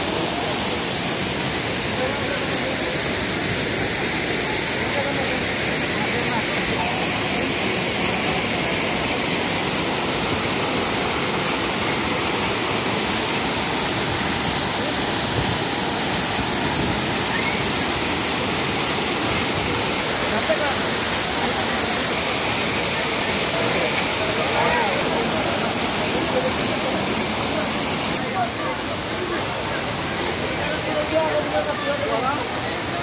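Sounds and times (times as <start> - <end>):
faint crowd voices: 0.0 - 33.0
waterfall pouring over rocks: 0.0 - 33.0.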